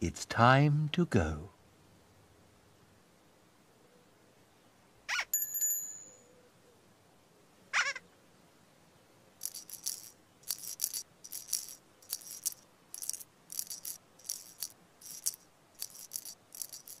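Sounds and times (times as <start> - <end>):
shaker rattle: 9.4 - 17.0.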